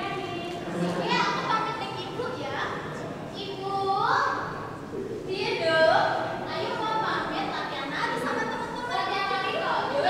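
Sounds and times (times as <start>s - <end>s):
girls speaking: 0.0s - 10.0s.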